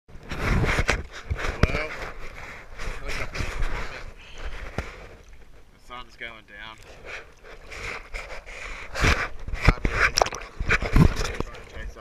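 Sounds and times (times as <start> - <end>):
sea water sloshing and slapping: 6.8 - 12.0.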